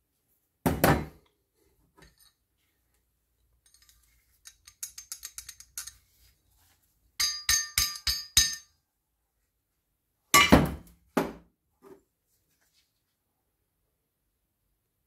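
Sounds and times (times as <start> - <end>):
heavy thunk on workbench: 0.6 - 1.2
light rattling clicks of metal parts: 2.0 - 6.1.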